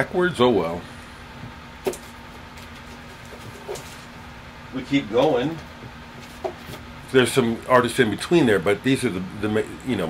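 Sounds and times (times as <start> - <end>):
furnace humming: 0.0 - 10.0
faint knocks of records handled: 5.2 - 6.9.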